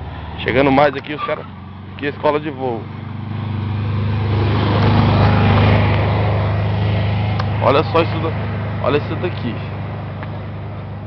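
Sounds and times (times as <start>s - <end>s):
van engine labouring uphill: 0.0s - 11.0s.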